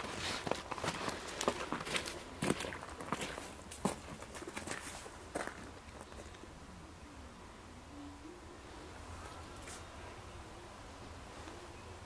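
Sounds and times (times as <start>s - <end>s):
footsteps crunching in snow: 0.0s - 5.8s.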